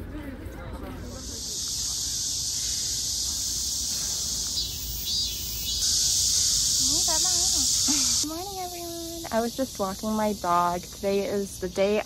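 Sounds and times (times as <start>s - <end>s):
cicadas buzzing: 1.0s - 12.0s.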